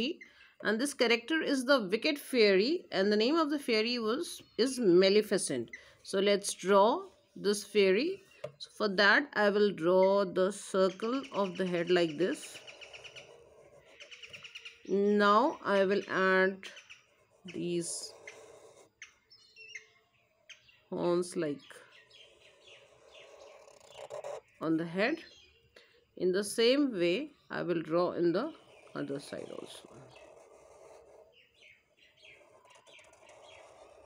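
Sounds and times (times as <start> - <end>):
marker scratching on paper: 10.9 - 14.6, 15.6 - 19.0, 22.3 - 24.4, 28.6 - 31.4, 32.3 - 34.0.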